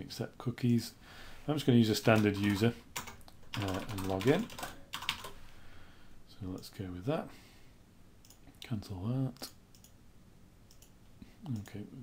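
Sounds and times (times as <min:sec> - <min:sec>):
faint computer mouse clicks: 0:09.4 - 0:10.0, 0:10.7 - 0:11.8.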